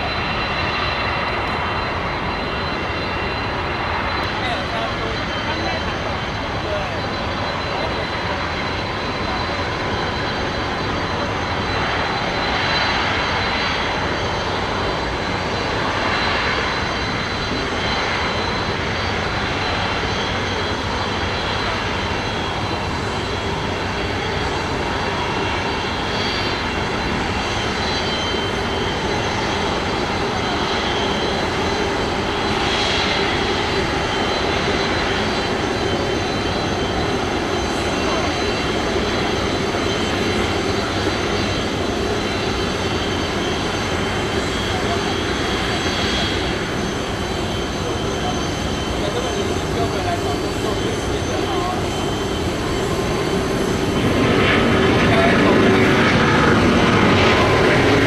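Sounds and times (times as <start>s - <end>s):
jet engines roaring and whining: 0.0s - 58.0s.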